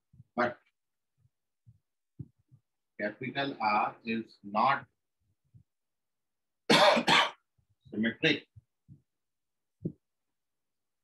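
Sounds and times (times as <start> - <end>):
man coughing: 6.7 - 7.4.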